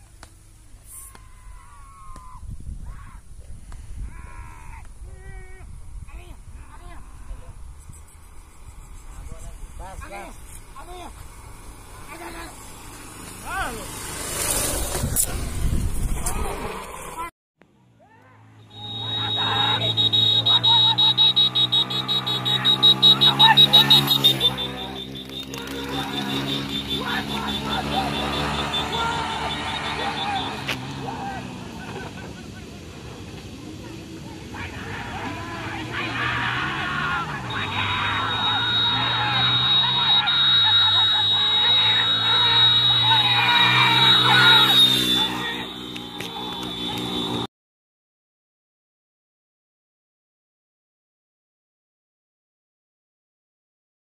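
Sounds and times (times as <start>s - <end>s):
constant high whine: 0.0s - 13.9s, 18.6s - 47.5s
people shouting: 1.0s - 3.2s, 18.0s - 31.8s, 33.8s - 47.4s
shrill pulsing high-pitched tone: 18.7s - 30.6s, 37.5s - 46.9s
motorcycle engine running: 18.7s - 31.6s, 37.3s - 47.4s.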